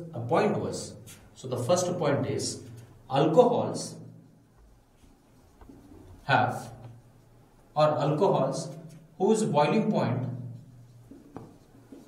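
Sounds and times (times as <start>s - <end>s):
marker pen scratching on whiteboard: 0.7s - 12.0s.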